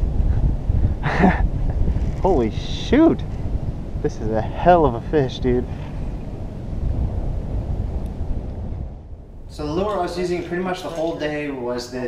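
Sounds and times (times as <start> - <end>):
wind buffeting microphone: 0.0 - 11.8.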